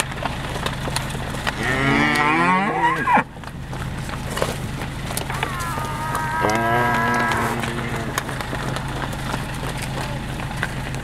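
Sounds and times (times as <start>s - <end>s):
cow mooing: 1.6s - 3.2s, 5.3s - 8.3s.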